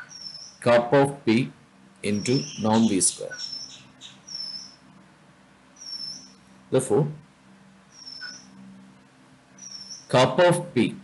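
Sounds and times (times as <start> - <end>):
thin high-pitched chirps: 0.0 - 0.6, 2.1 - 4.8, 5.8 - 6.4, 7.9 - 8.6, 9.6 - 10.1
low steady hum: 0.0 - 11.0.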